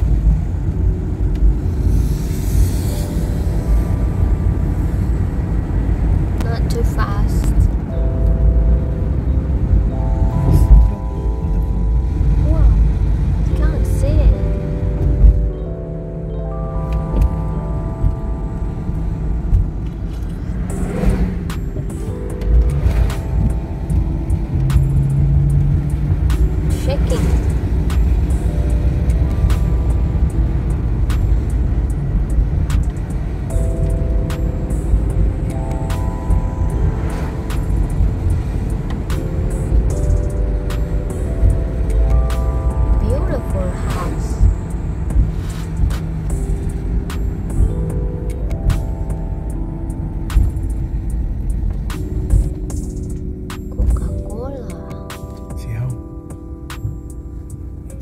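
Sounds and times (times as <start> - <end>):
background music rising note runs: 0.0 - 6.8, 7.6 - 58.0
car road and engine rumble: 0.0 - 58.0.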